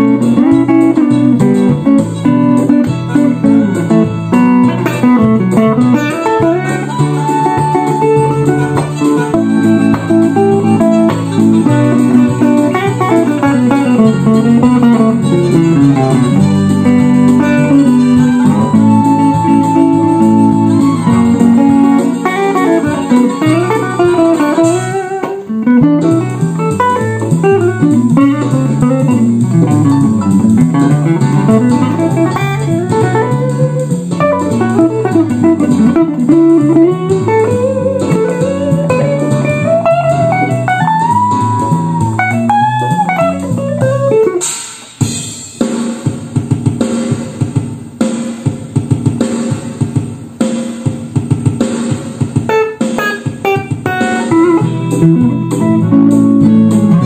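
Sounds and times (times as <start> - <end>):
electric guitar playing: 0.0 - 45.3, 51.1 - 57.0.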